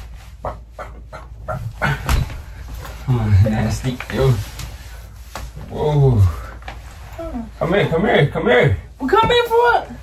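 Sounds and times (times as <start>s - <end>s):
person making laughter-like sounds: 0.4s - 2.3s.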